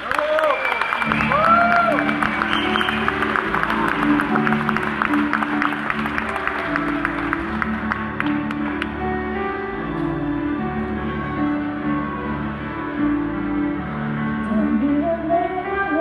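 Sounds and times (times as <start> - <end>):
audience applause and cheer: 0.0 - 13.3
string orchestra sustained chords: 2.0 - 16.0.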